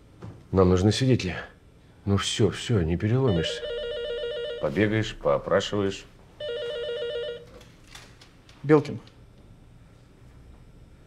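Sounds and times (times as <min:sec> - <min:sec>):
telephone ringing: 0:03.2 - 0:05.2, 0:06.4 - 0:07.6.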